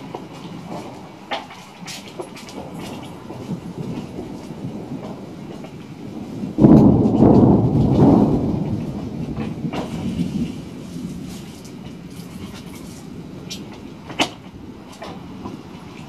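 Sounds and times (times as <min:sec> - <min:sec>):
thunder clap and rumble: 0:00.0 - 0:16.0.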